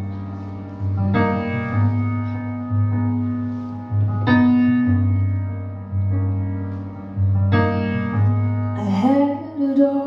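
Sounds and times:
piano chords over bass notes: 0.0 - 10.0.

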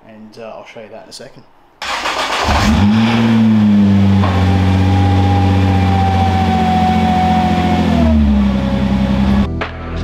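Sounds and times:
car engine idling: 1.9 - 9.5.

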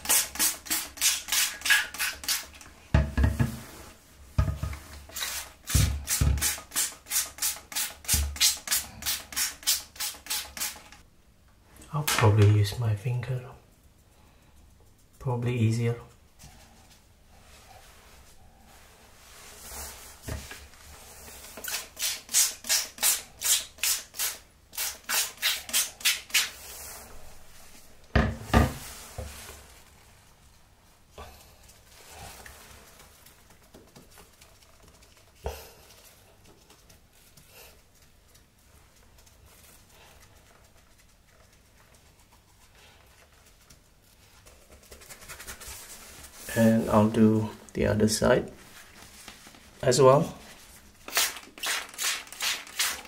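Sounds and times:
faint handling sounds: 13.7 - 21.6, 26.6 - 51.1.

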